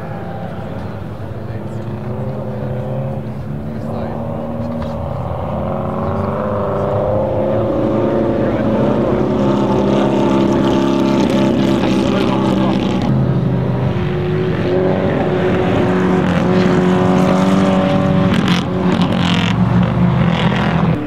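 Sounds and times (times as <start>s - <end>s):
car engine running: 0.0s - 21.0s.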